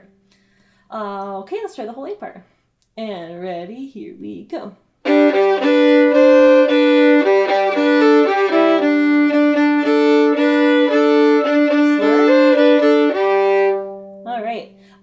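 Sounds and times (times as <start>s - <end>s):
solo fiddle tune: 5.0s - 15.0s.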